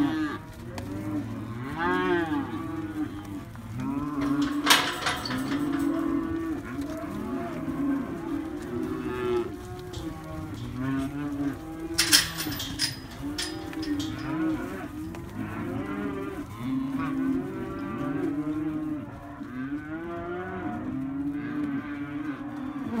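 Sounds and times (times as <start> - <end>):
cattle mooing and bellowing: 0.0 - 23.0.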